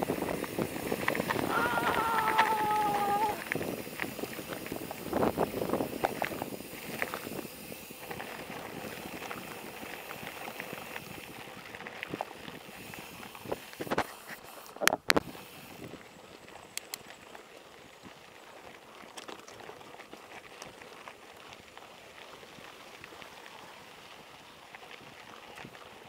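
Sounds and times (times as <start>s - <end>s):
bike rattling and clicking: 0.0s - 26.0s
bike tyres on gravel: 0.0s - 26.0s.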